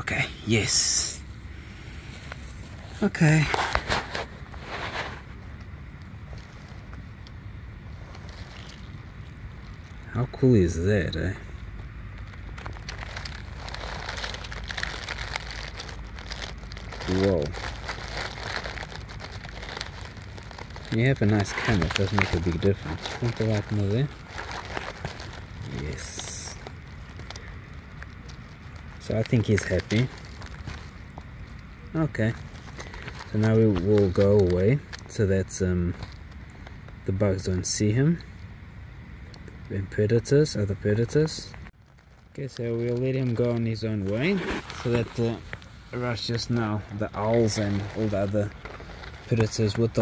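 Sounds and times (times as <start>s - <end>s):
hissing rustle: 0.0s - 35.2s, 41.5s - 50.0s.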